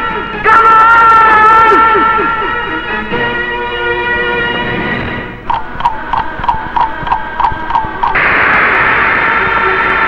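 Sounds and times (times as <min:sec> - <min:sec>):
clock ticking: 0:05.4 - 0:08.2.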